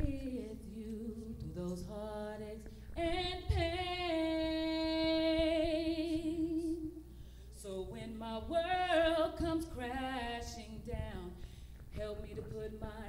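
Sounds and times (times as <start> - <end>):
woman singing gospel: 0.0 - 13.0.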